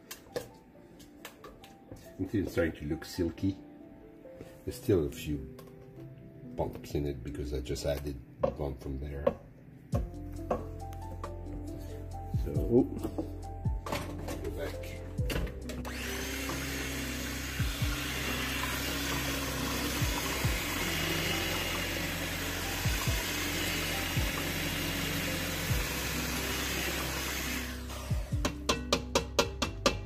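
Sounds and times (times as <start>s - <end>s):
electric mixer running: 15.7s - 28.6s.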